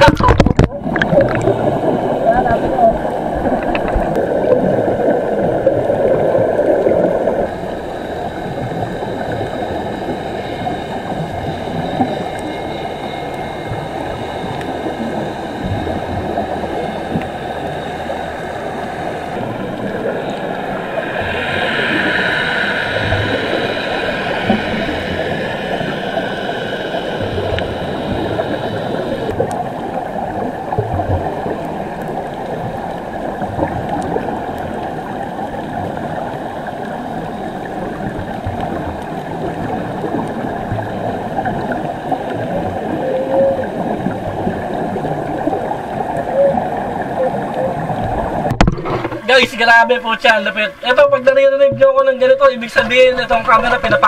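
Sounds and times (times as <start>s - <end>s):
steady multi-tone hum: 0.0s - 54.0s
underwater bubbling and gurgling: 0.0s - 54.0s.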